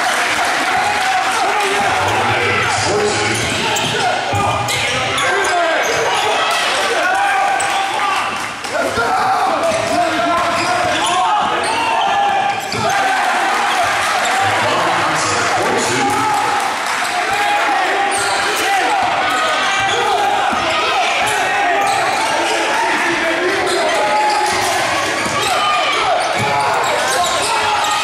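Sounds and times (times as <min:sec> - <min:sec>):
voices echoing in gym: 0:00.0 - 0:28.0.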